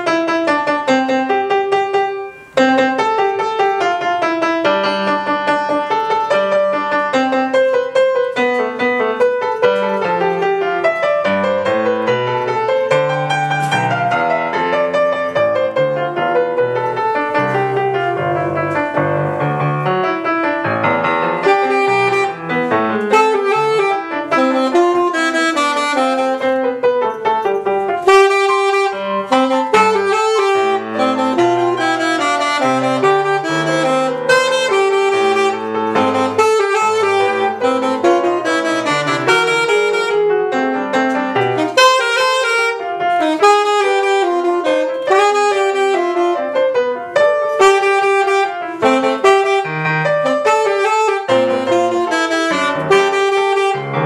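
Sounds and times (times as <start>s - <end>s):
piano playing: 0.0s - 54.0s
saxophone: 0.0s - 54.0s.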